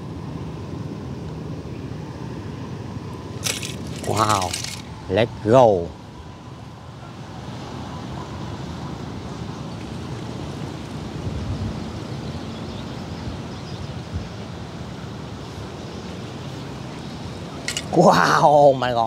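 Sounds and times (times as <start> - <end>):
wind buffeting microphone: 10.0 - 12.4.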